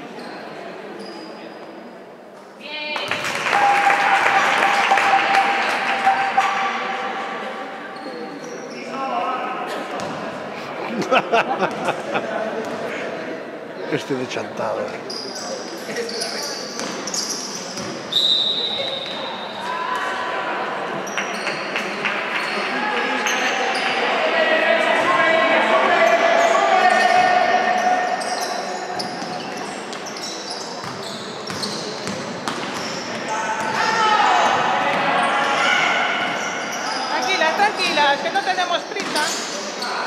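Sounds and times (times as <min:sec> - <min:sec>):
referee's whistle blast: 0:18.1 - 0:19.3
voices shouting: 0:23.7 - 0:29.0
basketball bouncing on court: 0:30.8 - 0:33.0.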